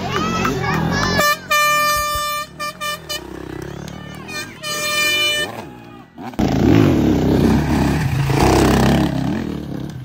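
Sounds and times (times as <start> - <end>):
crowd voices: 0.0 - 10.0
plastic horn blasts: 1.1 - 5.7.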